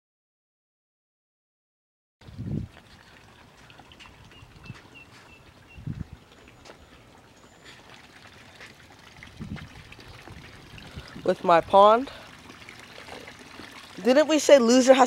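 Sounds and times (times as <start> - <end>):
small waterfall splashing into pond: 2.2 - 15.0.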